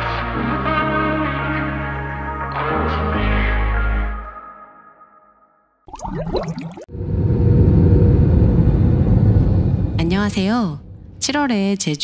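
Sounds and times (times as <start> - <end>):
jet cabin low rumble: 7.0 - 11.5.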